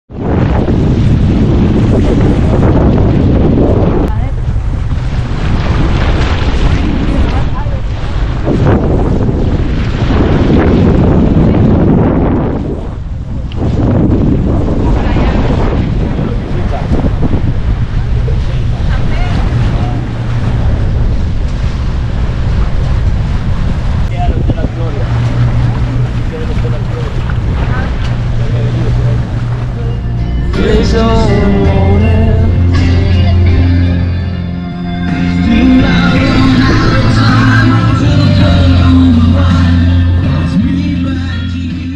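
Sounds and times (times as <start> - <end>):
wind buffeting microphone: 0.1 - 40.6
water noise from boat: 0.1 - 41.9
faint voices: 16.0 - 20.6, 24.1 - 31.1.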